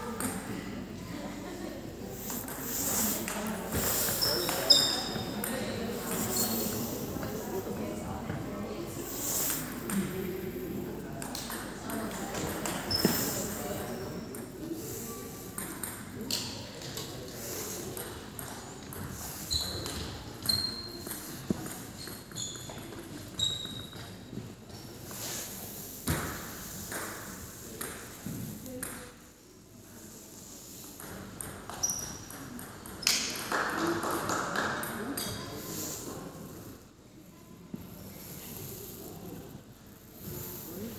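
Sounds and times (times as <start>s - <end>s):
murmur of voices: 0.0s - 22.5s, 32.5s - 40.9s.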